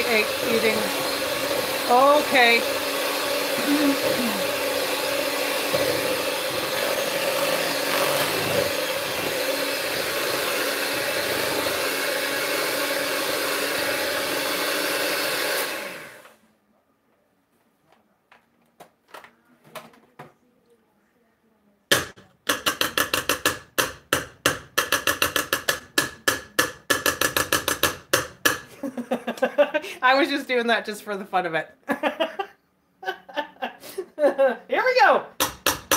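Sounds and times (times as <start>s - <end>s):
electric hand mixer running: 0.0s - 16.4s.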